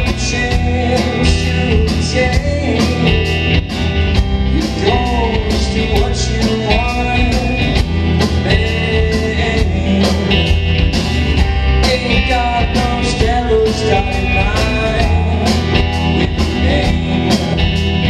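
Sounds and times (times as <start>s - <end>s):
drum kit beat: 0.0s - 18.0s
electric bass: 0.0s - 18.0s
electric guitars: 0.0s - 18.0s.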